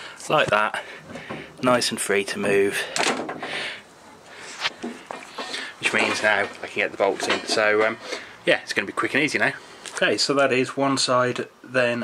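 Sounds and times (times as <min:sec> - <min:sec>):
rustling scrape: 0:04.4 - 0:08.3.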